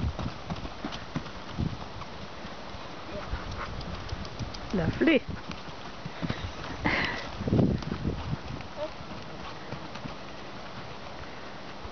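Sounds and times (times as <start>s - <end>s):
horse hoofbeats on dirt: 0.0s - 11.9s.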